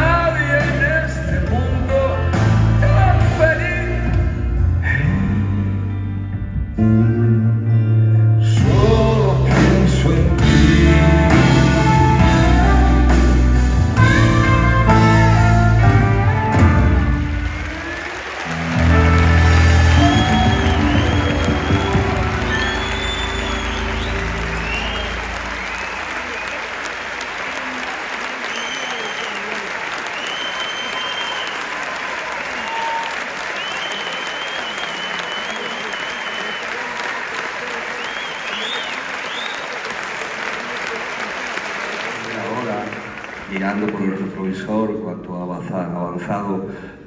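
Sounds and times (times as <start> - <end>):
audience applauding: 14.0 - 44.8
whistles: 19.8 - 26.7, 28.4 - 31.8, 32.6 - 37.0, 37.9 - 39.8.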